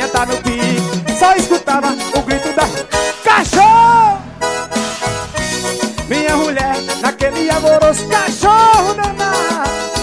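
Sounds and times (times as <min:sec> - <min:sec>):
keyboard melody with sliding notes: 0:00.0 - 0:10.0.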